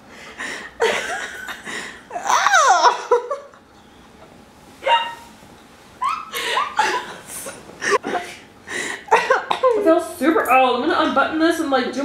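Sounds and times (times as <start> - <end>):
people laughing: 6.0 - 9.9.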